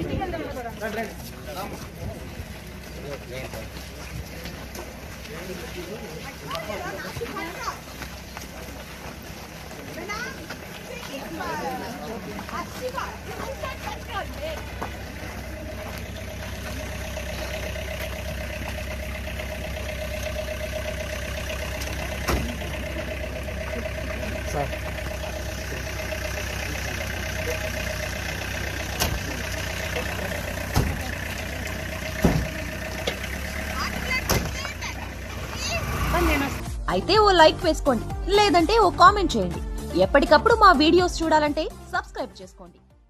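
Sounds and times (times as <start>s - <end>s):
crowd voices: 0.0s - 36.8s
vehicle engine idling: 0.0s - 43.0s.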